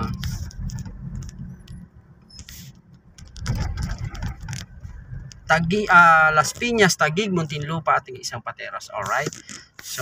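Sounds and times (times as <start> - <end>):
light clicks and rattles: 0.0 - 5.5
car engine and road rumble: 0.0 - 10.0.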